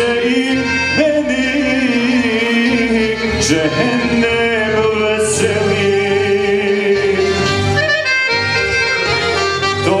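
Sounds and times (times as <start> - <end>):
man singing with vibrato: 0.0 - 8.1, 9.4 - 10.0
accordion accompaniment: 0.0 - 10.0.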